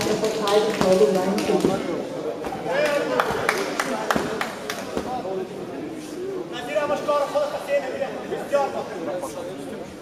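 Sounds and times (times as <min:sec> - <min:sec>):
voices talking in echoing hall: 0:00.0 - 0:10.0.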